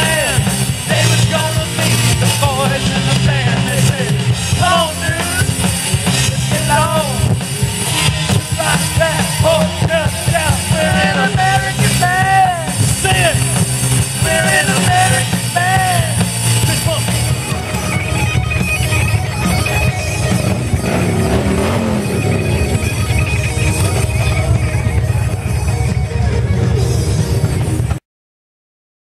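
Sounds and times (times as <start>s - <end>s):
loud rock music with electric guitar: 0.0s - 28.0s
electric guitar note bends: 15.6s - 28.0s.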